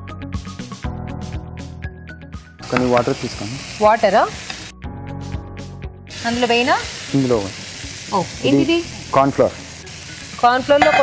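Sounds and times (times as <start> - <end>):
vegetables sizzling in frying pan: 2.6 - 4.8, 6.1 - 11.0.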